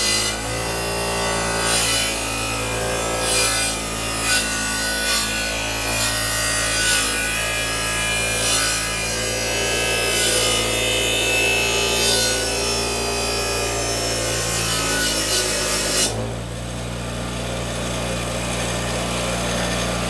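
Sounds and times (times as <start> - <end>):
grinder grinding metal: 0.0 - 20.0
grinder motor humming: 0.0 - 20.0.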